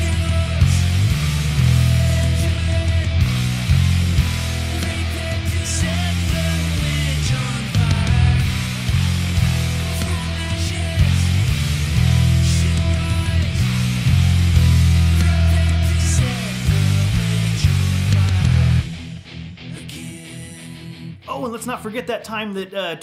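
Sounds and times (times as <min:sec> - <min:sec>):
heavy metal electric bass riff: 0:00.0 - 0:21.6.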